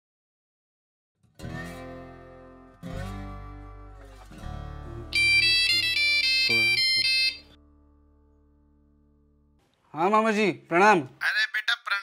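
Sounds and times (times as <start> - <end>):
phone ringtone melody: 5.1 - 7.6.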